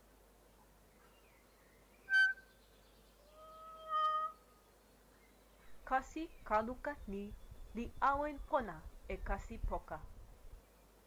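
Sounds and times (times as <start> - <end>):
bird calling: 2.0 - 4.6.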